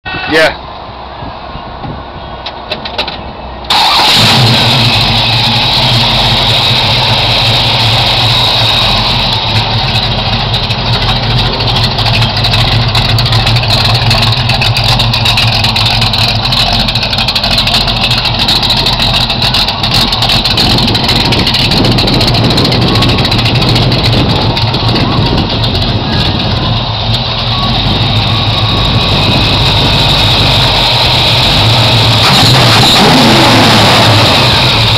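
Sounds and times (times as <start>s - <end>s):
car engine idling: 0.6s - 34.9s.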